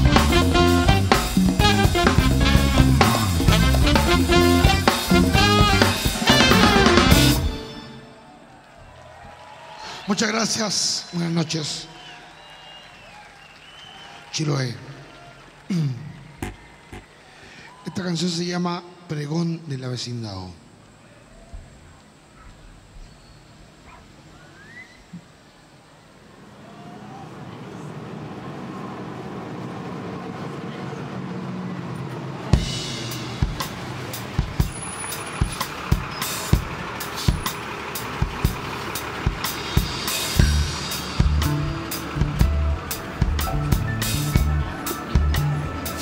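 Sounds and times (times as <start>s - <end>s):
electric bass: 0.0s - 7.7s, 35.4s - 46.0s
drum kit steady beat: 0.0s - 7.9s, 32.5s - 46.0s
electric guitar: 0.0s - 8.1s.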